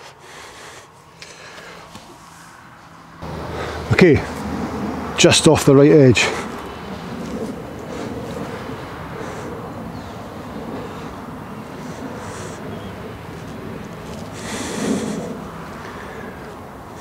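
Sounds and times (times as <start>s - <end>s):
distant engine: 0.0s - 17.0s
wind rumble: 2.6s - 17.0s.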